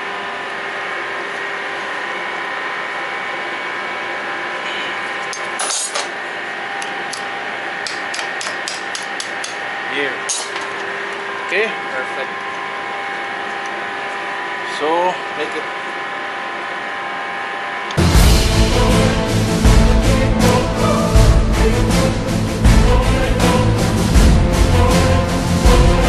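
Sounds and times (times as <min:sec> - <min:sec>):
machinery hum with held tones: 0:00.0 - 0:26.0
metal tool tapping wire: 0:07.1 - 0:09.6.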